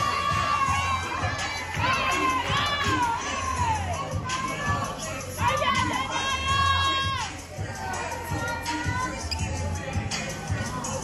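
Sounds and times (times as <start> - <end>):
pop music: 0.0 - 11.0
teenagers cheering and shouting: 0.0 - 11.0.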